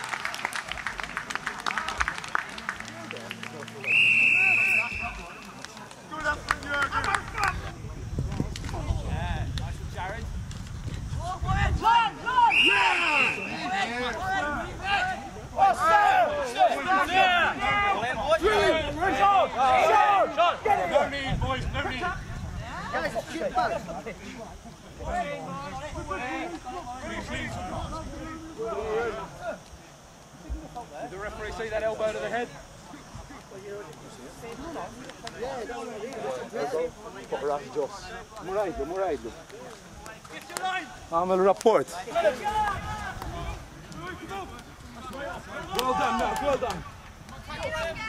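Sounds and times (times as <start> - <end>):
referee's whistle blasts: 3.8 - 5.4, 12.4 - 13.8
players and spectators shouting: 11.2 - 24.0, 42.0 - 48.0.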